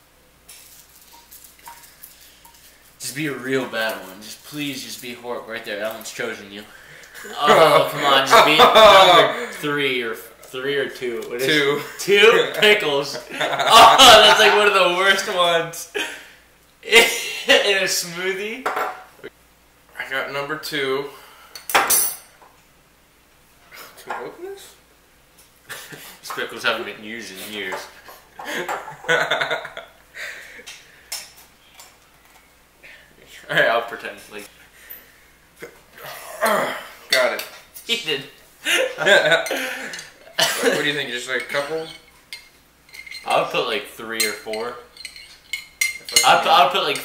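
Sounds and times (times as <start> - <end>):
person laughing: 7.2 - 9.5, 13.3 - 14.8, 38.6 - 40.0.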